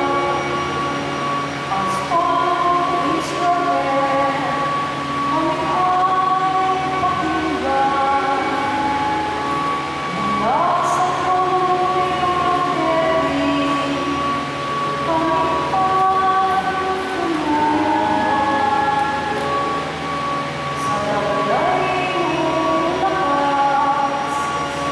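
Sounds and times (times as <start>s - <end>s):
church music held chords: 0.0s - 24.9s
note sliding up: 0.0s - 24.9s.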